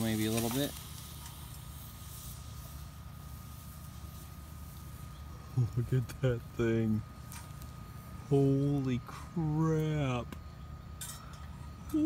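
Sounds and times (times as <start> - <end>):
camp stove fan rumble and hiss: 0.0 - 12.0
faint high whine: 0.0 - 12.0
pot boiling: 0.0 - 12.0.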